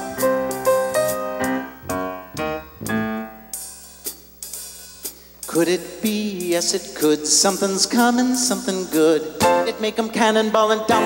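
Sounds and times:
piano chords: 0:00.0 - 0:03.6
cymbal and hi-hat strokes: 0:00.2 - 0:09.2.

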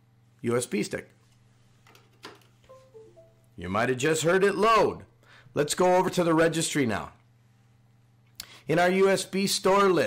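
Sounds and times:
computer device-connect chime: 0:02.7 - 0:03.6.

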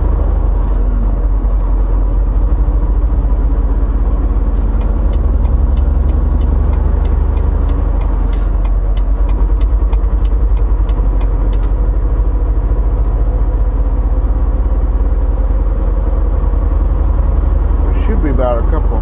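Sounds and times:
road noise: 0:00.0 - 0:19.0
truck diesel engine rumble: 0:00.0 - 0:19.0.

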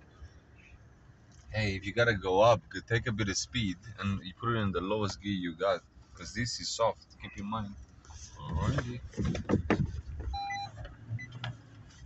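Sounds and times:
truck engine rumble: 0:00.0 - 0:12.0
parking sensor warning beeps: 0:10.3 - 0:11.5.

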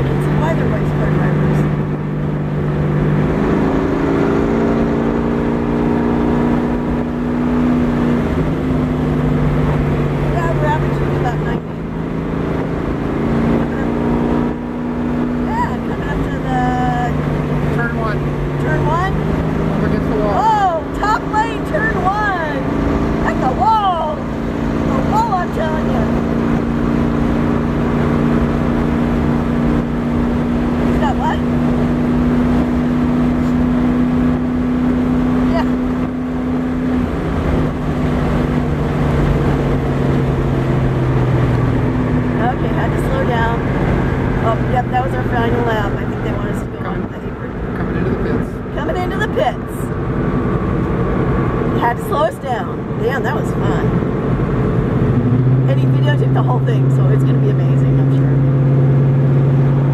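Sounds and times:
car engine running: 0:00.0 - 0:59.9.

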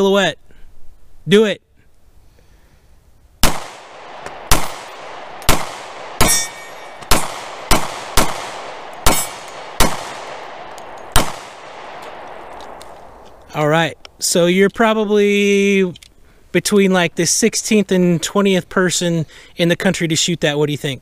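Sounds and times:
pistol shots with echo: 0:03.4 - 0:13.2
steel target ringing: 0:06.2 - 0:07.3.

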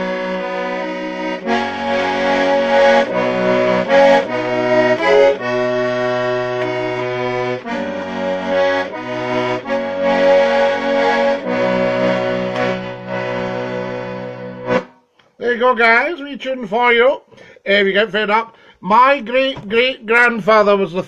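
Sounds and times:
accordion playing a tune: 0:00.0 - 0:15.2.

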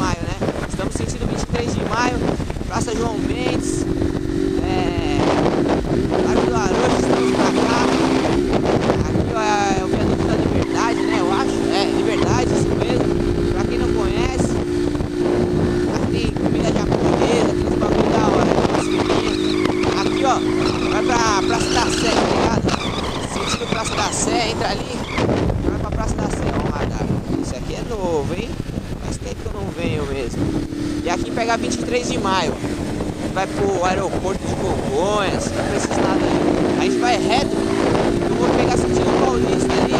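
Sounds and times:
motorcycle engine running: 0:00.0 - 0:39.9
wind rushing over microphone: 0:00.0 - 0:39.9.

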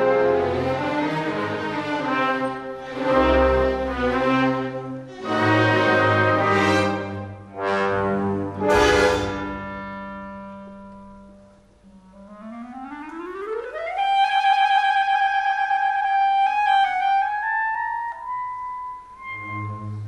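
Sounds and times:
held orchestral chord: 0:00.0 - 0:12.5
solo clarinet: 0:00.0 - 0:20.0.

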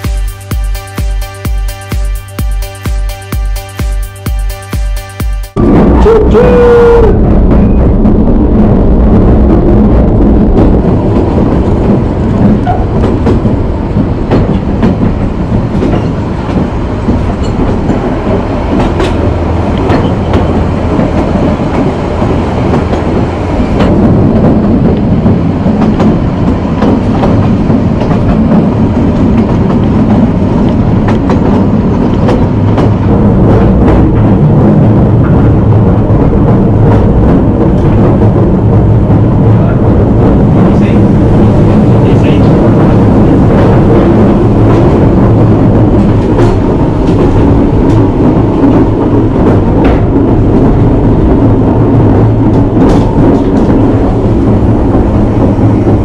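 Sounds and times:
train wheels rumbling on rail: 0:00.0 - 0:56.0
wooden carriage clicks and rattles: 0:11.1 - 0:33.0.

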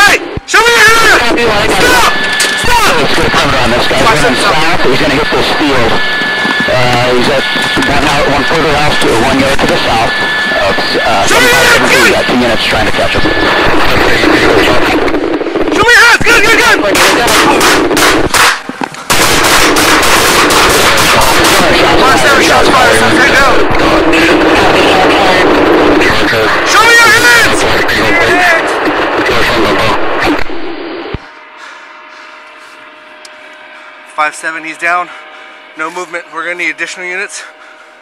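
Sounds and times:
steady background noise: 0:00.0 - 0:38.0.

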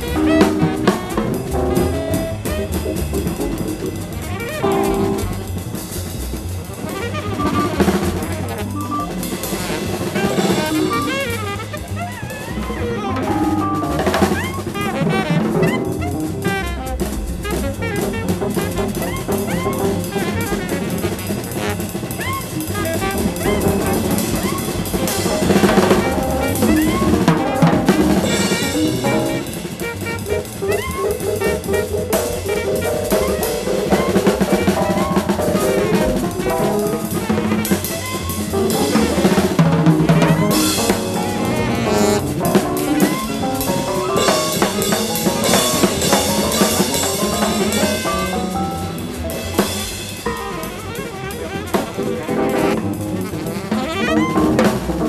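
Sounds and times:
busy drum kit: 0:00.0 - 0:55.0
jazz-rock band playing: 0:00.0 - 0:55.0.

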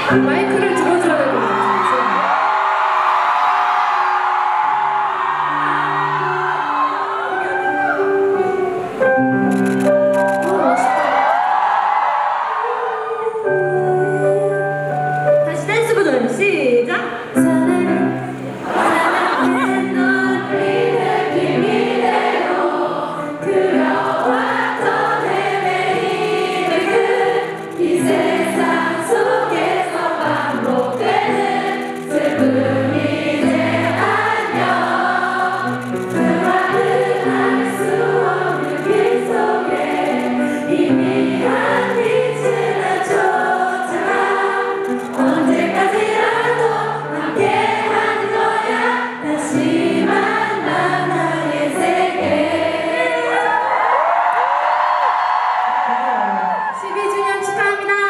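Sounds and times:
sustained keyboard chords: 0:17.3 - 0:53.0
many voices singing together: 0:18.0 - 0:56.9.

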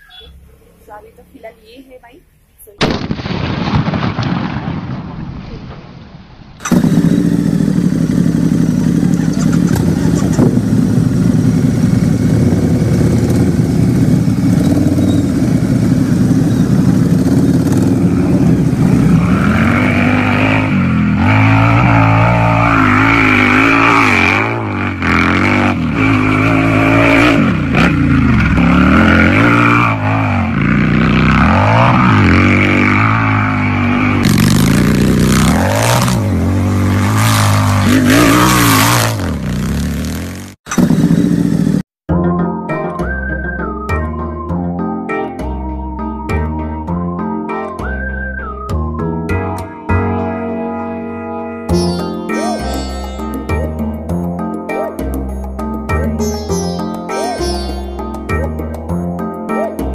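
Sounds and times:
scooter engine revving: 0:06.6 - 0:42.0.

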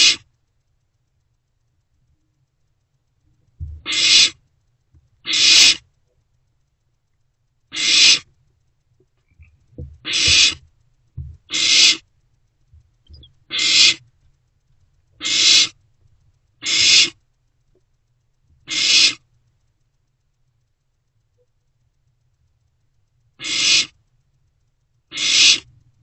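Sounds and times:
owlets hissing screeches: 0:03.9 - 0:04.4, 0:05.3 - 0:05.8, 0:07.7 - 0:08.3, 0:10.1 - 0:10.6, 0:11.5 - 0:12.0, 0:13.5 - 0:14.0, 0:15.2 - 0:15.8, 0:16.6 - 0:17.2, 0:18.7 - 0:19.2, 0:23.4 - 0:23.9, 0:25.1 - 0:25.7.

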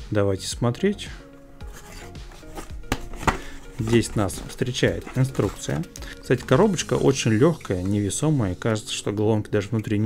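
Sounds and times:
cardboard rubbing and scraping: 0:01.6 - 0:06.8.

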